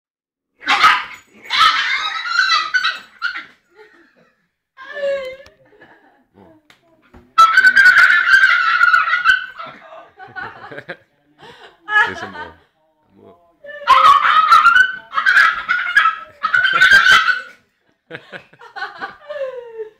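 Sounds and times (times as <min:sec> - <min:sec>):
dog barking: 0:00.6 - 0:03.4, 0:07.4 - 0:09.8, 0:13.9 - 0:17.5.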